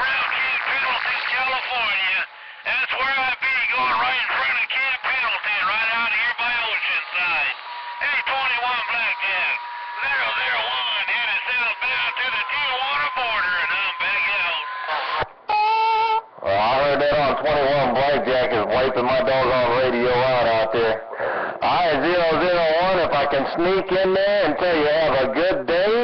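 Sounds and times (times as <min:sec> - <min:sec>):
radio voices through speaker: 0:00.0 - 0:15.3, 0:16.4 - 0:26.0.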